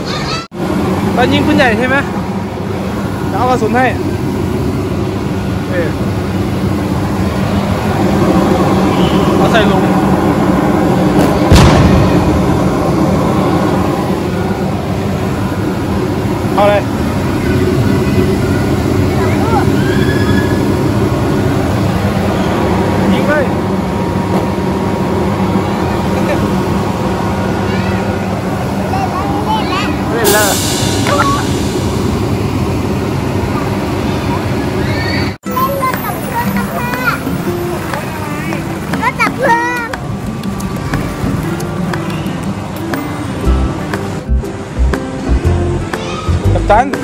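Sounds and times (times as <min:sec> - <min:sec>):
scattered voices: 0:00.0 - 0:44.4
continuous mechanical hum: 0:00.0 - 0:47.0
sharp bang: 0:11.2 - 0:13.0.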